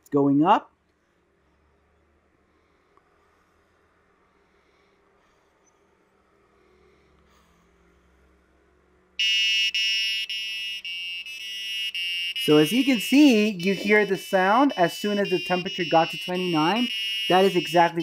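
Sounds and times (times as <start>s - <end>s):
buzzer beeping jingle: 9.2s - 18.0s.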